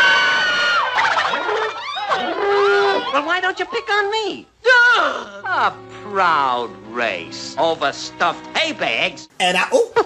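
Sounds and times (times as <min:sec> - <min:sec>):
cartoon elephants shrieking and trumpeting: 0:00.0 - 0:04.0.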